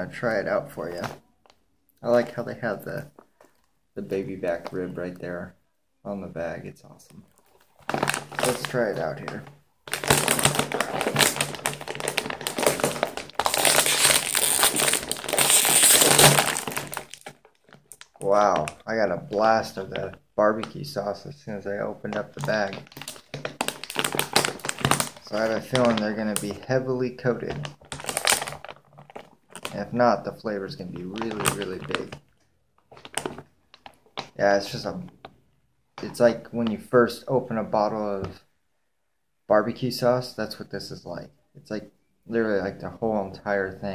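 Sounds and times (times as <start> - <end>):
chip bag crinkling: 7.3 - 20.7, 22.0 - 26.6, 27.4 - 30.0, 30.7 - 34.3.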